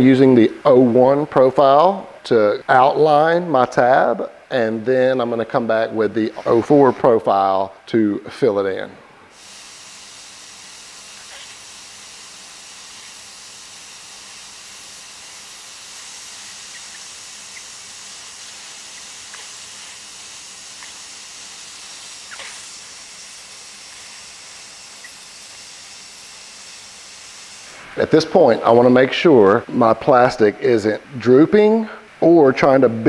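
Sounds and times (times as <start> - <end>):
hot-air welder hissing: 0.6 - 7.8, 8.4 - 32.2.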